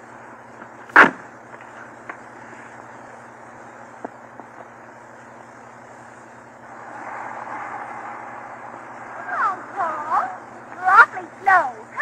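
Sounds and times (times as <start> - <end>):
record surface hiss and hum: 0.0 - 12.0.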